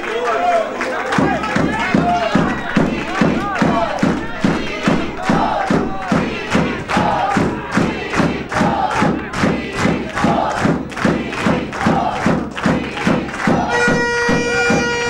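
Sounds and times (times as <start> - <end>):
chanted vocals: 0.0 - 15.0
fast steady drumbeat: 1.1 - 15.0.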